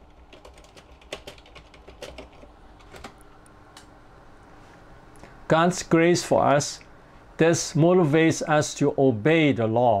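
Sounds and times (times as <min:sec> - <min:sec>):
keyboard typing clicks: 0:00.3 - 0:03.9.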